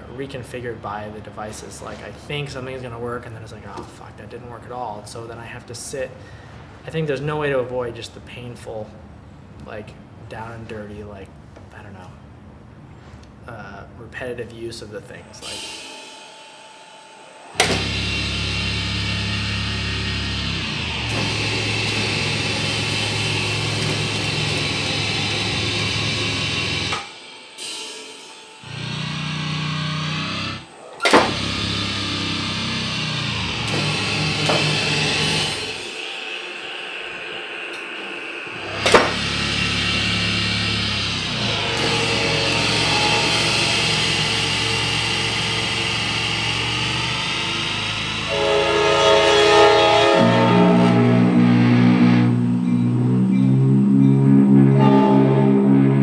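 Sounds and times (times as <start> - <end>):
low grinding electronic drone: 14.8 - 56.0
pulsing electronic riff: 15.4 - 56.0
sharp hits: 15.4 - 56.0.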